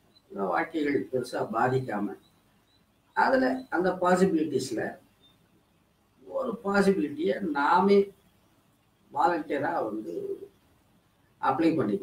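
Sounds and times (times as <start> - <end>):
man speaking: 0.3 - 2.2, 3.2 - 5.0, 6.3 - 8.1, 9.1 - 10.5, 11.4 - 12.0.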